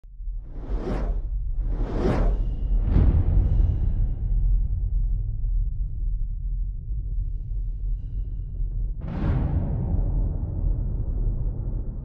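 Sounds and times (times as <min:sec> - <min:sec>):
deep low rumble: 0:00.0 - 0:12.0
whooshing swooshes: 0:00.5 - 0:03.5.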